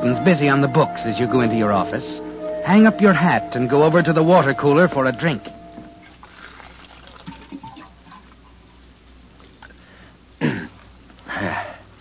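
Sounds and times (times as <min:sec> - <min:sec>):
water trickling: 0:06.0 - 0:08.4.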